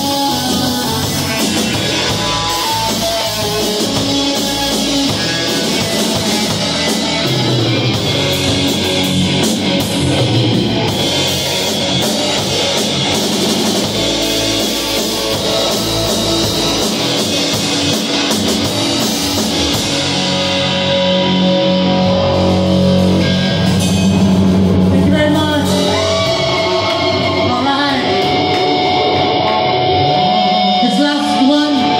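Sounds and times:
drum kit: 0.0 - 31.9
electric bass: 0.0 - 31.9
electric guitar: 0.0 - 31.9.

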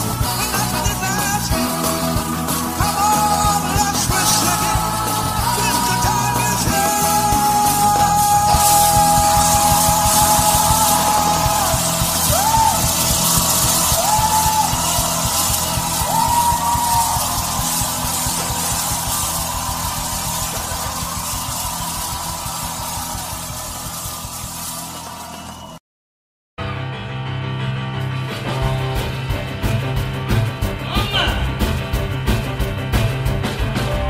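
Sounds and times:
rock and roll song: 0.0 - 25.8, 26.6 - 34.0.

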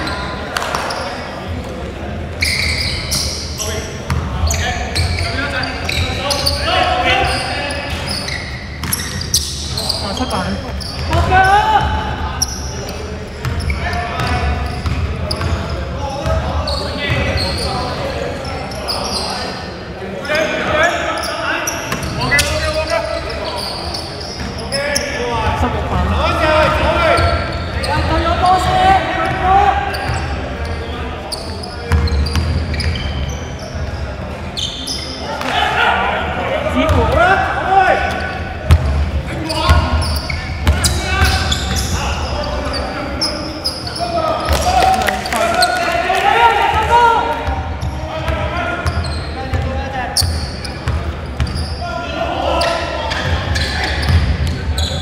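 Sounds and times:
players calling out: 0.0 - 55.0
basketball bouncing: 38.7 - 39.0.

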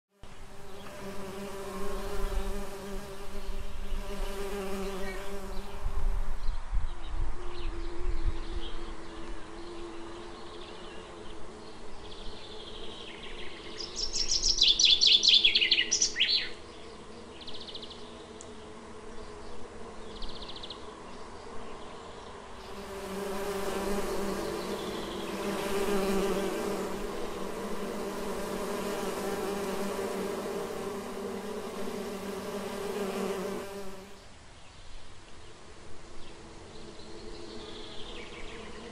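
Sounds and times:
bees buzzing: 0.2 - 6.2, 22.6 - 34.2.

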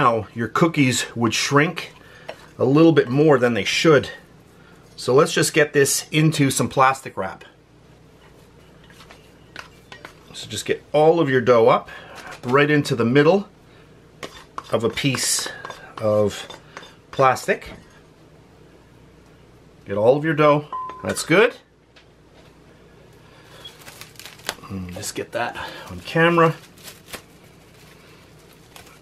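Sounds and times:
plastic wrap crinkling: 23.4 - 29.0.

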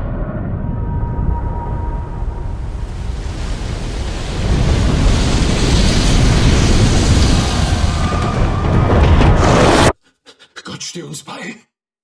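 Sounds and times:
ocean wave rushing: 1.7 - 9.9.

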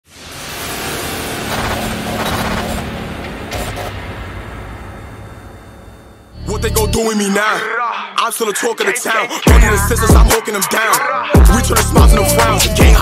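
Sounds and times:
dense rushing noise: 0.0 - 6.5
low hum: 0.1 - 7.0.

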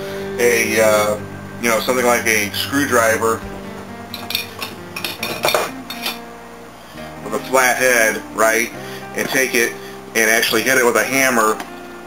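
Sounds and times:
metal tools clinking together: 4.1 - 6.2.

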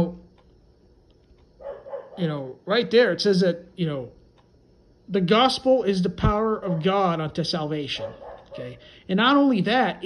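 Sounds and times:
man speaking: 0.0 - 0.2, 2.2 - 4.2, 5.1 - 10.0.

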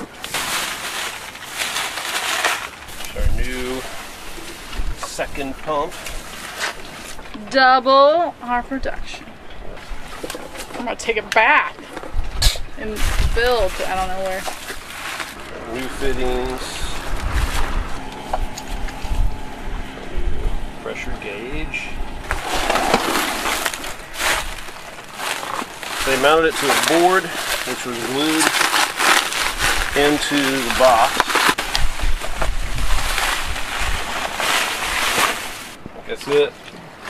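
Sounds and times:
plastic packaging rustling: 0.0 - 7.3, 12.8 - 19.0, 22.3 - 36.5
bubble wrap and cardboard crinkling: 0.0 - 7.7, 12.8 - 17.8, 22.3 - 36.5
wind buffeting microphone: 3.0 - 6.3, 11.9 - 25.0, 29.5 - 36.1
low rumble: 12.0 - 35.6.

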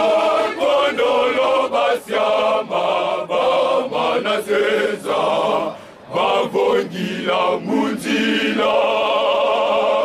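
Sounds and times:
men's choir chanting: 0.0 - 10.0.

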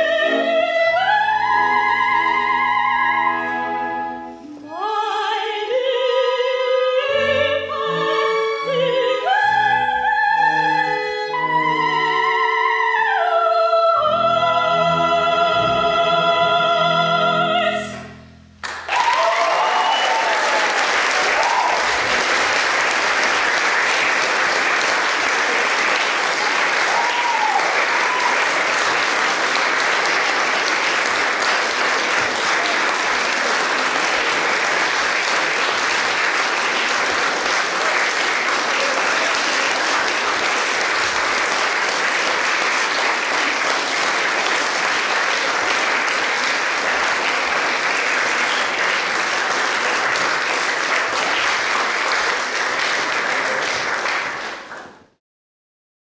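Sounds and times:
audience applauding: 18.6 - 55.2.

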